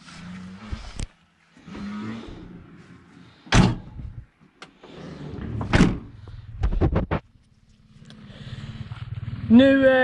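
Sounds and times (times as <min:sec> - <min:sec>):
van door slamming: 0:03.5 - 0:04.1, 0:05.6 - 0:06.2.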